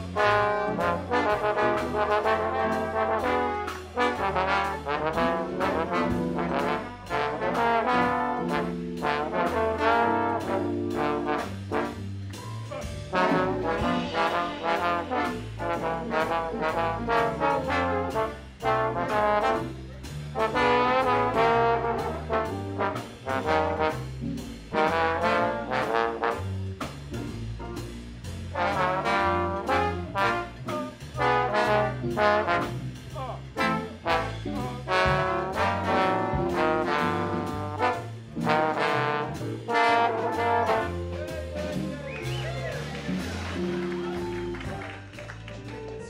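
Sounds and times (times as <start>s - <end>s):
trombone section: 0.0s - 45.3s
bass line: 0.0s - 46.0s
jazz big band playing: 0.0s - 46.0s.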